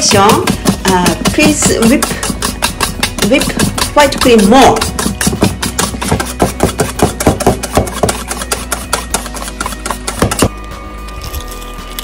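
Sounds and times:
whisk clicking in metal bowl: 0:00.0 - 0:10.5.

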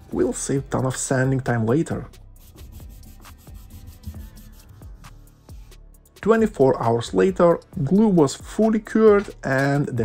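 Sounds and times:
soft background music: 0:00.0 - 0:10.0
wet rag rubbing on wood: 0:02.4 - 0:05.2.

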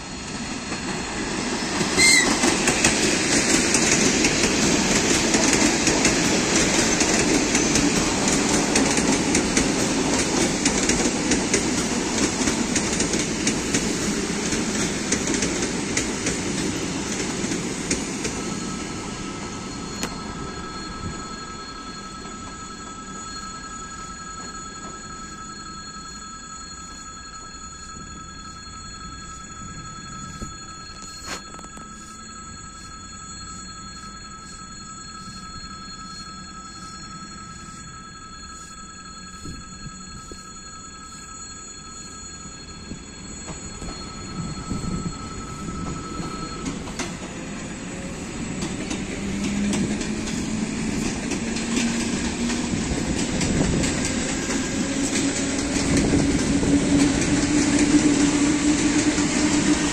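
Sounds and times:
train wheels rumbling on rails: 0:00.0 - 0:26.1, 0:42.7 - 0:59.9
steady high ringing tone: 0:00.0 - 0:59.9.

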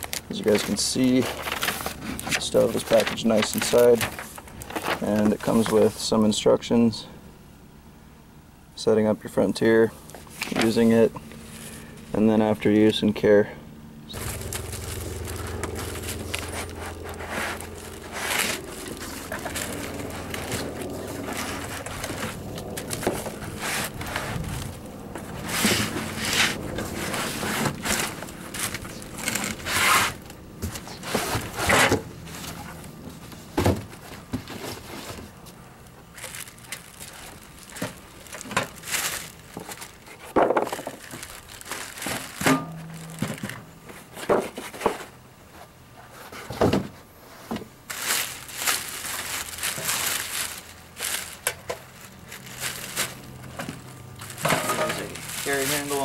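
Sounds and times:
cardboard scraping and rustling: 0:00.0 - 0:06.0, 0:14.2 - 0:35.5, 0:36.2 - 0:56.0
plastic wrapping crinkling: 0:00.0 - 0:06.1, 0:14.1 - 0:31.6, 0:34.0 - 0:44.8, 0:47.8 - 0:56.0
steady low hum: 0:00.0 - 0:56.0.

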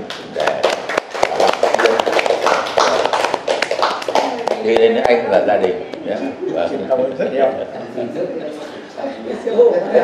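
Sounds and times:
people clapping: 0:00.0 - 0:06.0.

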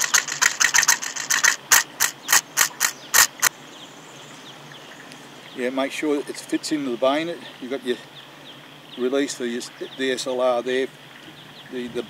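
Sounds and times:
rapid sharp clicks: 0:00.0 - 0:03.5.

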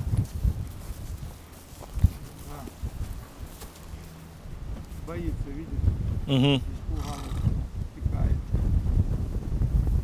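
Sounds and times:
horse hooves thudding on ground: 0:00.0 - 0:10.0.

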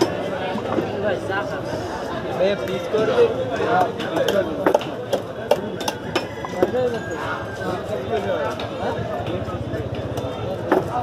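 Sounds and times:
babble of voices: 0:00.0 - 0:11.0.

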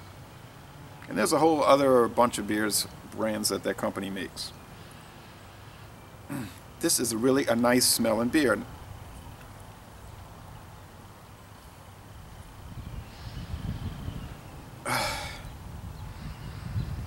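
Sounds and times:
man sniffing: 0:14.9 - 0:15.5.

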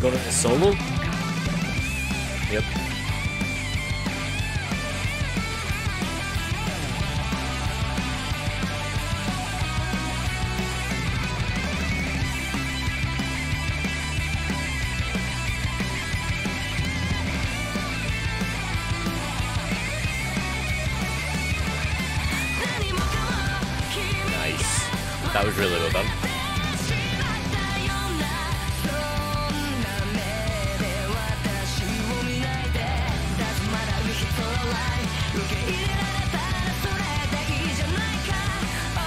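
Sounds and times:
hard rock band: 0:00.0 - 0:39.0.

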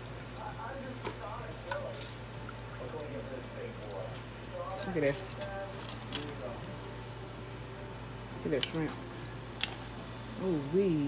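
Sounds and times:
hot oil bubbling: 0:00.0 - 0:11.0
low steady hum: 0:00.0 - 0:11.0.

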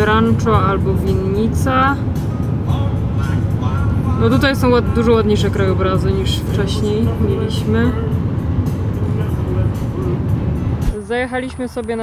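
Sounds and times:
car road rumble: 0:00.0 - 0:12.0
music playing: 0:00.0 - 0:12.0.

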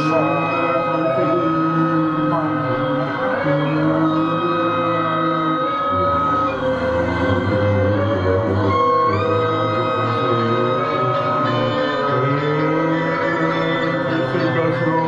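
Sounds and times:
deep hum: 0:00.0 - 0:15.0
electric guitar and keyboard tones: 0:00.0 - 0:15.0
low drone: 0:00.0 - 0:15.0.

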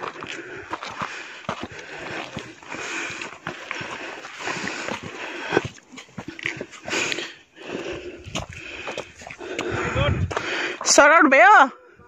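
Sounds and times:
footsteps crunching on gravel: 0:00.0 - 0:07.3.

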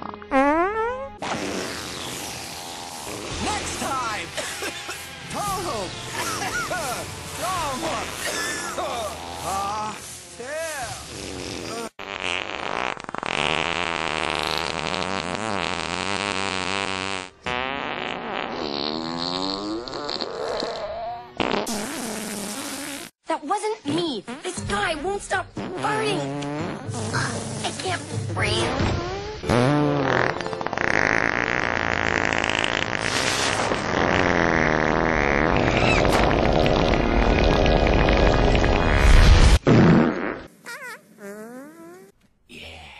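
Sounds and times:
comedic fart sound effect: 0:00.0 - 0:23.2, 0:25.6 - 0:42.2.

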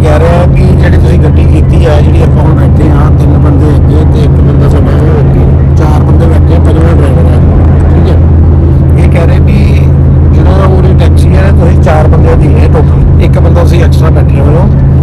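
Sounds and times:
car engine and road noise: 0:00.0 - 0:15.0.

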